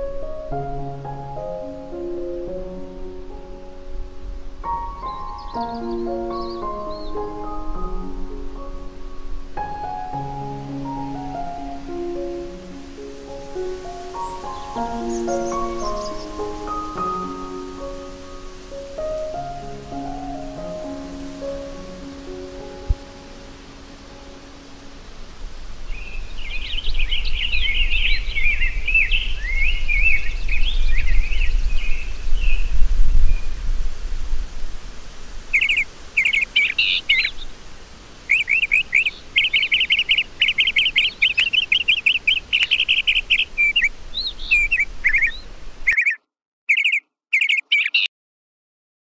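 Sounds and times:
soft piano notes: 0.0s - 25.6s
birds chirping: 0.9s - 9.0s, 9.6s - 24.9s, 25.9s - 33.6s, 35.5s - 37.6s, 38.2s - 48.1s
fast bird trill: 35.6s - 37.4s, 38.3s - 48.1s.

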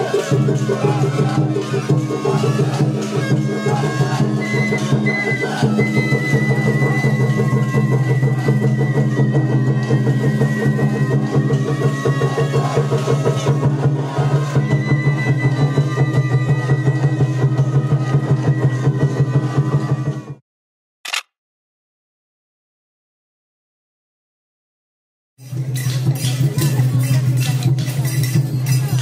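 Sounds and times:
bamboo flute long high notes: 0.0s - 20.4s.

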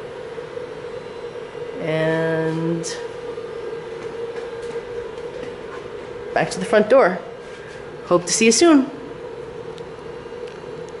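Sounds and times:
room hum with faint tone: 0.0s - 11.0s.

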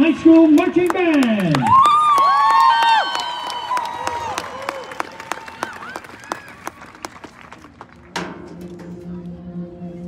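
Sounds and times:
audience clapping with whoops: 0.3s - 8.0s.

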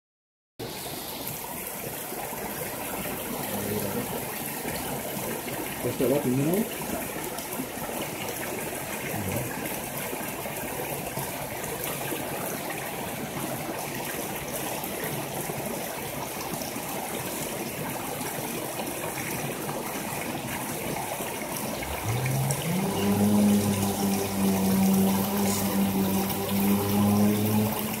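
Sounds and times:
stream running over rocks: 0.6s - 28.0s
low hum: 21.7s - 28.0s.

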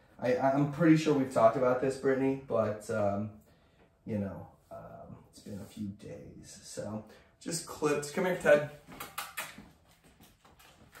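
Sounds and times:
faint footsteps on tile floor: 8.3s - 11.0s.

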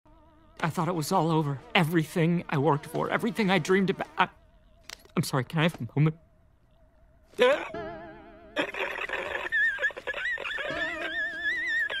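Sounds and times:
theatrical crying wail: 7.4s - 12.0s.

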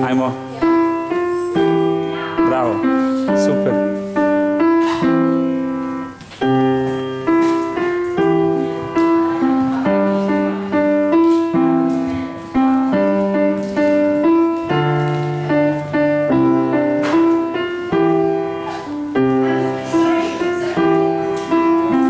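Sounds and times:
upright piano playing: 0.0s - 22.0s.

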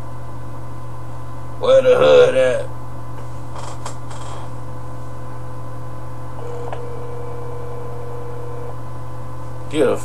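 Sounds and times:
electrical mains hum: 0.0s - 10.0s
faint steady high tone: 6.4s - 8.8s.

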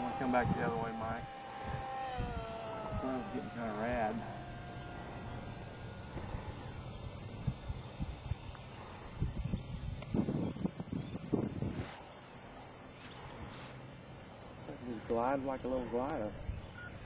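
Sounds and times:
wind buffeting microphone: 0.0s - 12.1s.

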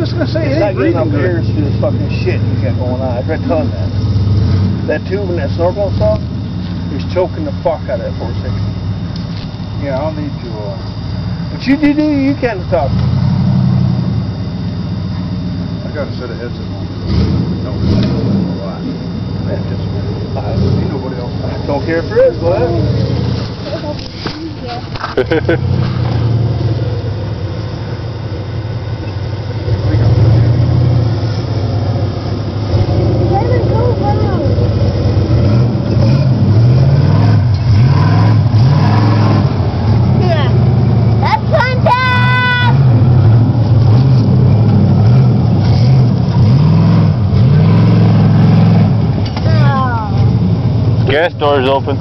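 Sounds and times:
high steady tone: 0.0s - 52.0s
truck engine revving: 0.0s - 52.0s.

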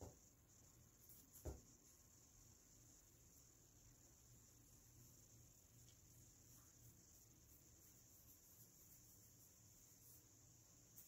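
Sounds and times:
high-pitched hiss: 0.0s - 11.0s.

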